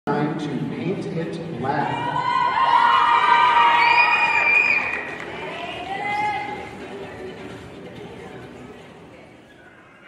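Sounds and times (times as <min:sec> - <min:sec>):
audience cheering and screaming: 0:01.8 - 0:06.6.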